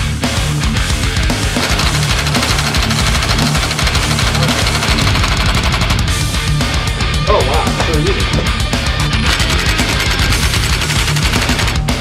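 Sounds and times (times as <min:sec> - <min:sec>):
loud rock music: 0:00.0 - 0:12.0.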